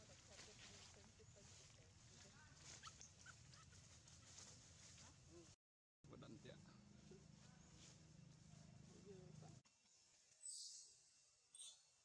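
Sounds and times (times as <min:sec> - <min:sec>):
faint animal chirps and squeaks: 0:02.6 - 0:04.4, 0:10.4 - 0:11.9.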